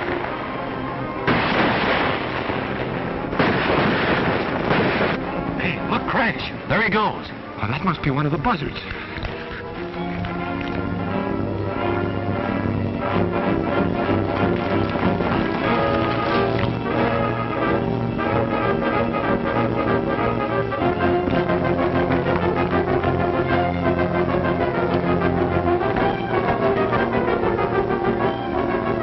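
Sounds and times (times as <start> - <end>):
orchestral music with brass: 0.0 - 29.0.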